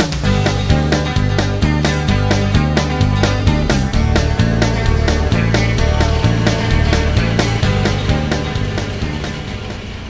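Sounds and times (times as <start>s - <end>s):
music with steady beat and bass: 0.0s - 10.0s.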